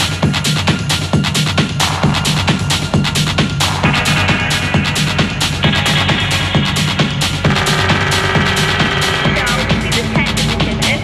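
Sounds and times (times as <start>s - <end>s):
techno kick drum beat: 0.0s - 11.0s
synth tones: 3.6s - 10.1s.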